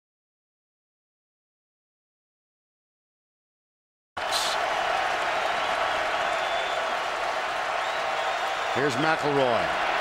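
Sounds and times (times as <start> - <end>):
stadium crowd roaring: 4.2 - 10.0.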